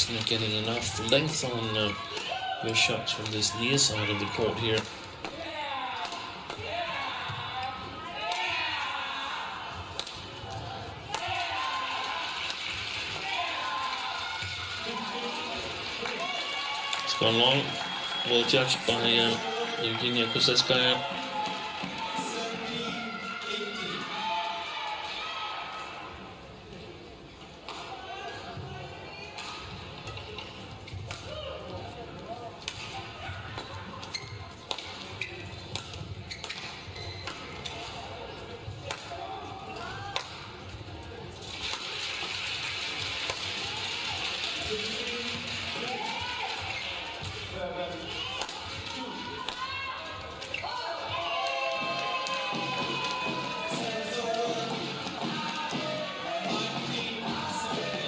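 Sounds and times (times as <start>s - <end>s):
music playing in arena: 14.8s - 25.0s, 50.6s - 58.0s
shoes squeaking on court: 33.6s - 37.6s.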